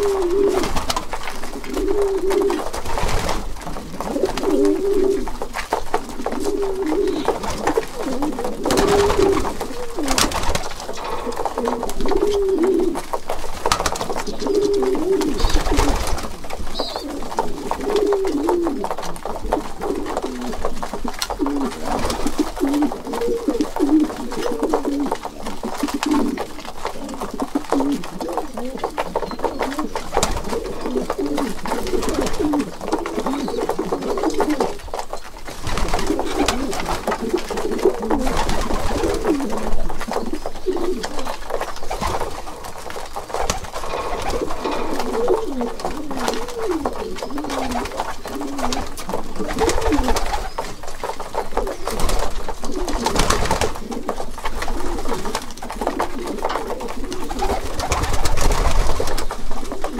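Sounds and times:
beaks pecking grain: 0.0 - 59.9
pigeons cooing: 0.0 - 59.9.

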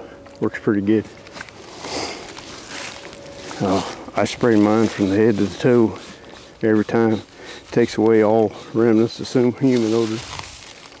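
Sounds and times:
rustling of leaves and clothing: 1.0 - 11.0
spray bottle hissing: 4.4 - 10.2.

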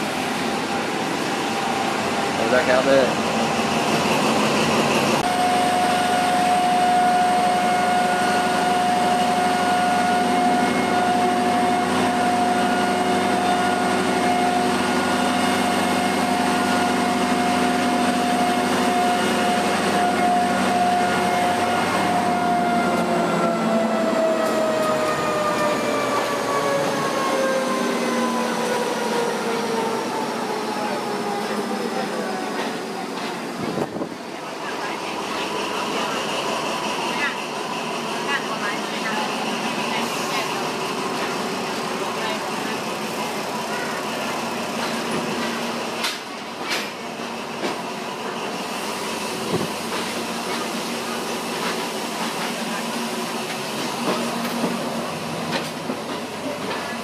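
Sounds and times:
train mechanical whine: 0.0 - 57.0.

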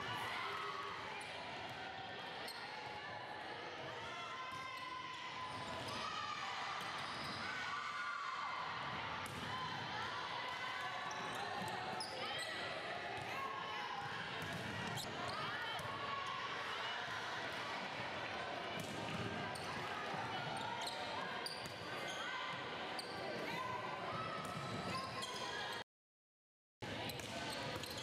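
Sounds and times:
players calling and chattering: 17.2 - 25.8.

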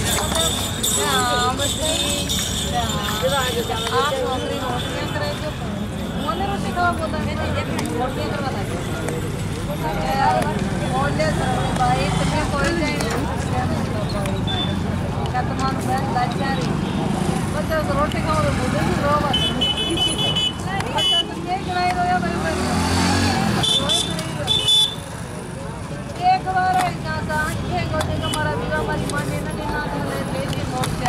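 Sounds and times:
traffic rumble: 0.0 - 31.0
voices chattering: 0.0 - 31.0.

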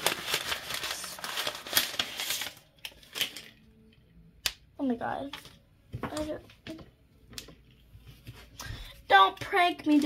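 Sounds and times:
paper and plastic crinkling: 0.0 - 4.0.

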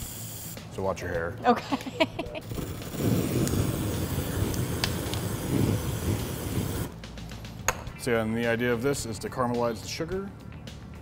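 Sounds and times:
rushing hissing torch flame: 2.3 - 7.0.

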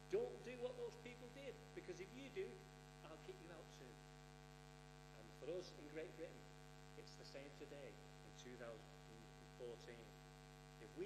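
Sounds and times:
man speaking: 0.0 - 4.0, 5.2 - 6.4, 7.0 - 10.2
electrical mains hum: 0.0 - 11.0.

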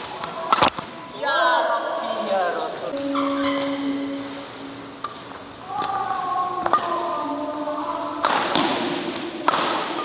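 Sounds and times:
sneaker soles squeaking on court: 2.9 - 5.3.

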